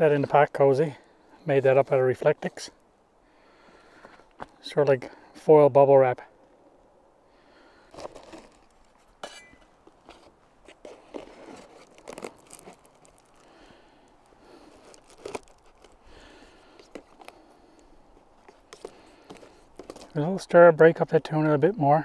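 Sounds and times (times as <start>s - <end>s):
foil wrap crinkling and rustling: 7.9s - 9.2s, 9.9s - 20.2s.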